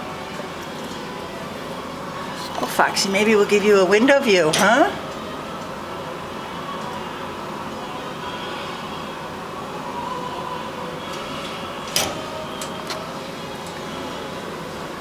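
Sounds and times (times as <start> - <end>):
mechanical hum: 0.0 - 15.0.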